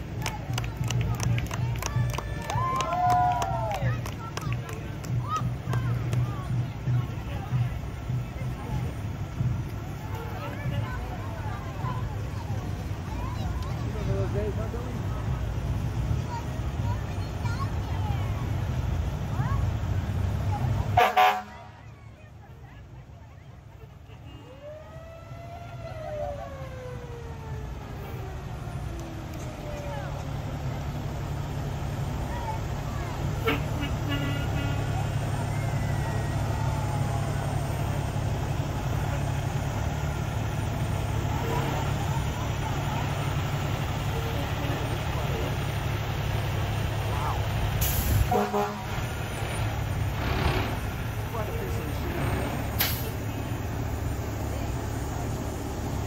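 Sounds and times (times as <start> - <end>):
diesel truck engines rumbling: 0.0 - 56.0
fire engine horn blasts: 20.8 - 21.8, 23.9 - 25.3, 33.2 - 35.4, 47.8 - 49.6.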